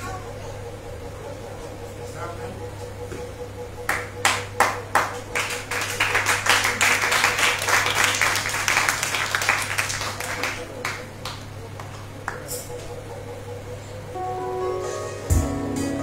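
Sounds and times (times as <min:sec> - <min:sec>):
congregation clapping: 0:03.9 - 0:12.9.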